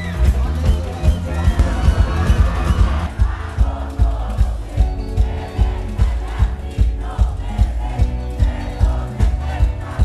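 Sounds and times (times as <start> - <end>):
crowd shouting: 0.0 - 10.0
fast drum beat: 0.0 - 10.0
live band with horns: 0.0 - 10.0.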